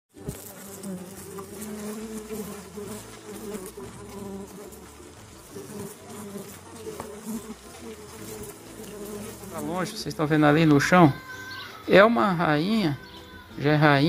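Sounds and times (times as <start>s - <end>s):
bees buzzing: 0.1s - 14.0s.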